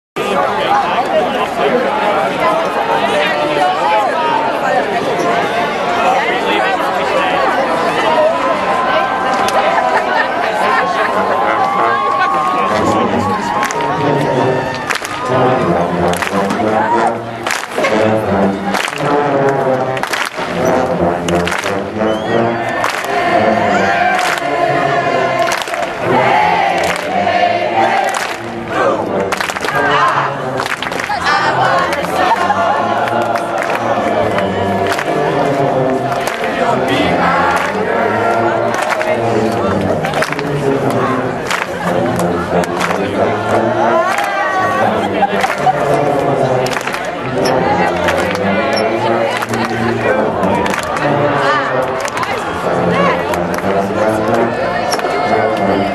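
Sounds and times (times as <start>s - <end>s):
spectators talking: 0.2s - 55.9s
low brass playing low notes: 12.6s - 55.9s.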